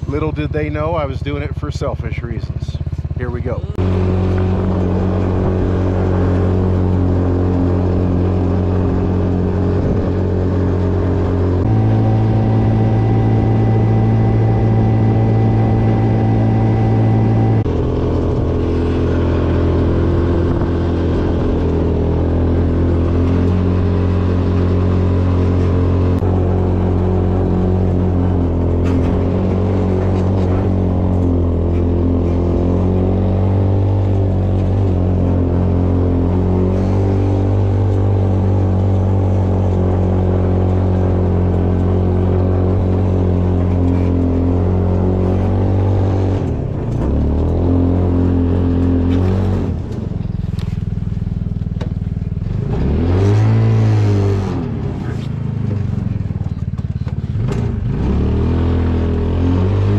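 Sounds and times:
go-kart engine running: 0.0 - 59.9.

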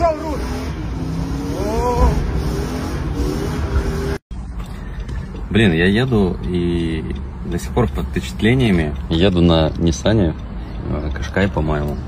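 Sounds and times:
car engine revving hard: 0.0 - 4.2.

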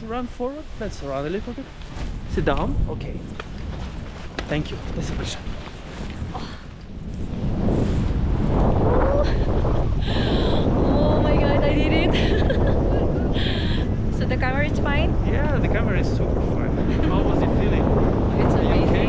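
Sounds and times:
wind rushing over microphone: 0.0 - 19.0.

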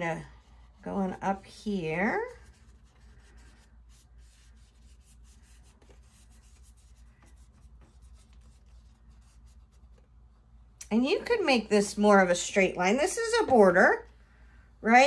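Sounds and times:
scratchy brush strokes on paper: 0.0 - 10.2
steady low hum: 0.0 - 15.0.

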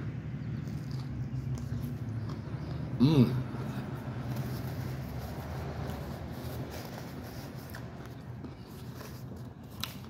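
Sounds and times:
steady low hum: 0.0 - 10.0
person biting and chewing: 0.6 - 10.0.

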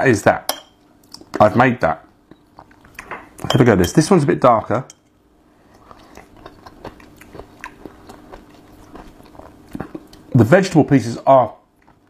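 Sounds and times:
person chewing crunchy food: 2.4 - 3.1, 5.6 - 10.3.

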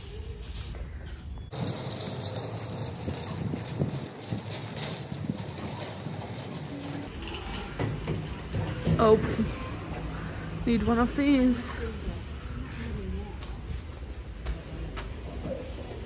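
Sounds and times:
dense irregular rattling and clicking: 1.5 - 9.1.

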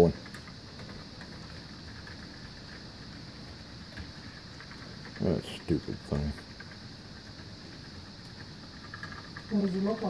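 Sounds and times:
faint clicks: 0.1 - 10.0
model train rolling on track: 4.4 - 10.0.

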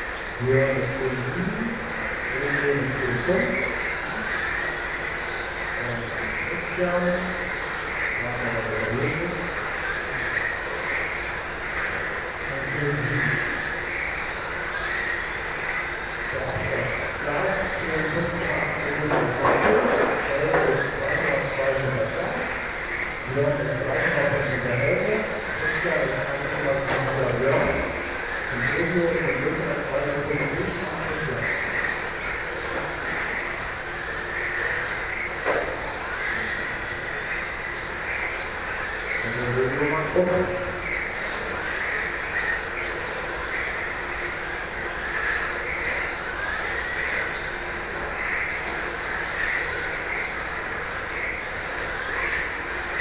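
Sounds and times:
hall noise: 0.0 - 43.3
tyres humming: 0.0 - 53.0.

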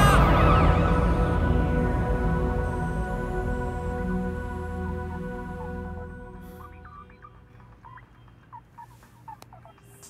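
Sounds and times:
soft music: 0.0 - 9.2
birds chirping: 5.6 - 10.0.

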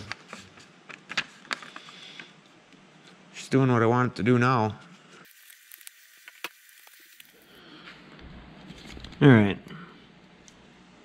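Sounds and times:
paper rustling and crackling: 0.0 - 2.0.

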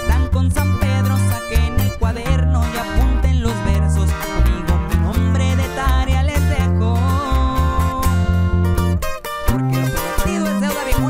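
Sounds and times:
accompanying guitar: 0.0 - 11.0
held bass notes: 0.0 - 11.0.

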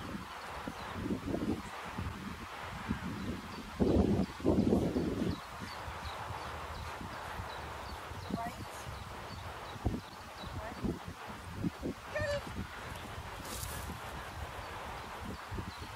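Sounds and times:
steady hiss: 0.0 - 15.9.

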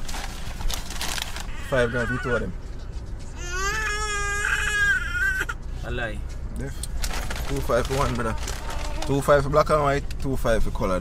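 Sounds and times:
baby crying: 1.5 - 2.5, 3.4 - 5.6, 8.4 - 9.2.

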